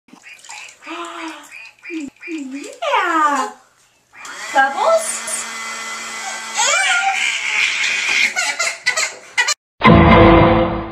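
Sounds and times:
water splashing in a bathtub: 0.1 - 5.2
high-pitched voice: 6.6 - 7.2.

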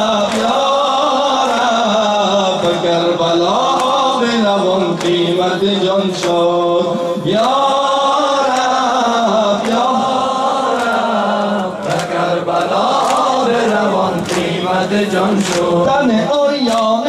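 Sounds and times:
man chanting a lament: 0.0 - 17.0.

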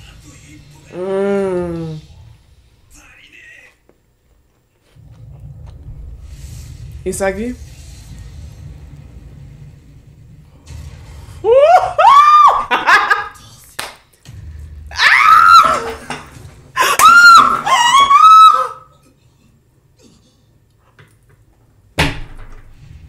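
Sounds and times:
high-pitched voice screaming: 14.9 - 16.0, 16.8 - 18.9.

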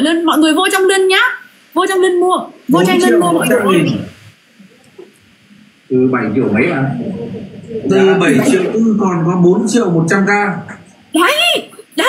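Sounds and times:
person speaking: 2.6 - 5.1, 5.9 - 11.7.

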